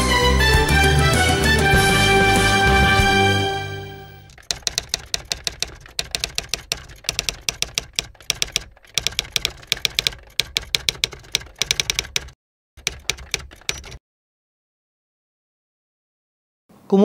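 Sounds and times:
typewriter key strikes: 0:04.3 - 0:14.0.

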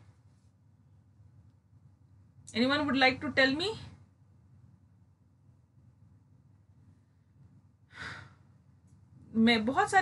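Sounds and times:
woman sighing: 0:07.9 - 0:08.4.

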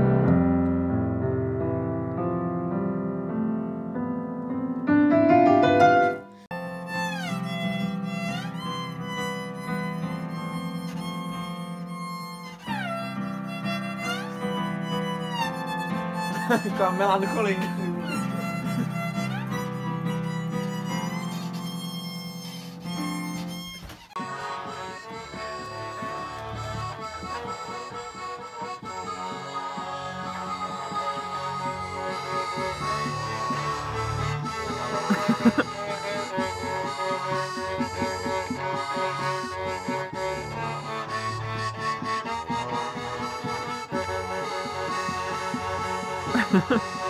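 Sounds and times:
held reedy keyboard notes: 0:00.0 - 0:47.0
keyboard melody and chords: 0:00.0 - 0:47.0.

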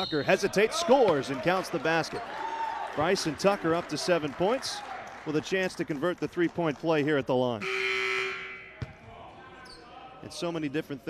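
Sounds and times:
crowd noise in a gym: 0:00.0 - 0:11.0.

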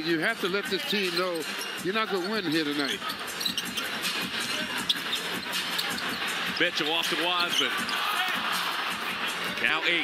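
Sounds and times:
sneakers squeaking on court: 0:00.9 - 0:06.4, 0:07.0 - 0:08.1.

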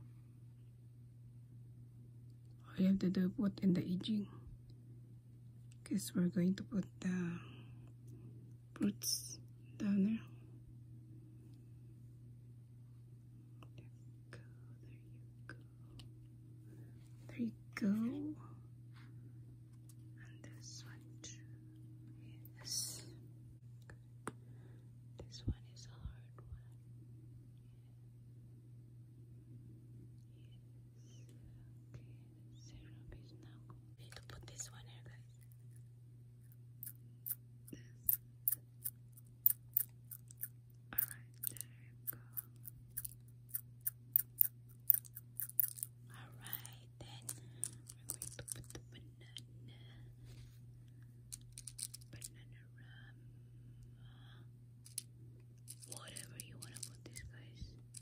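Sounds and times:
low steady hum: 0:00.0 - 0:58.0
faint whispered voice: 0:20.2 - 0:21.6, 0:22.2 - 0:23.2, 0:25.2 - 0:26.8, 0:31.9 - 0:35.4, 0:41.0 - 0:42.5, 0:46.1 - 0:50.1, 0:52.1 - 0:53.2, 0:55.8 - 0:57.8.

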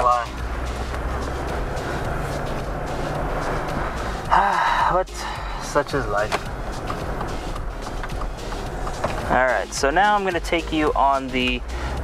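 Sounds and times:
man speaking: 0:00.0 - 0:00.4, 0:04.3 - 0:06.4, 0:09.3 - 0:11.6
car cabin road rumble: 0:00.0 - 0:12.0.

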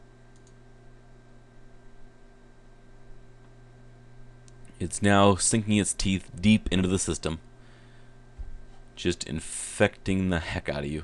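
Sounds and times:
low electrical hum: 0:00.0 - 0:11.0
computer mouse clicks: 0:00.3 - 0:00.6.

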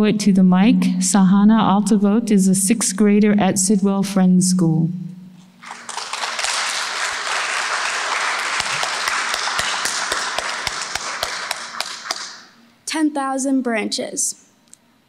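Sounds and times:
audience applauding: 0:05.6 - 0:12.6.

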